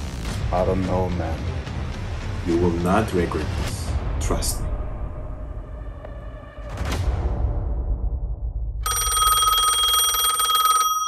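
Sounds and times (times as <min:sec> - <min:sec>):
bell ringing in a rapid trill: 0:08.8 - 0:11.0.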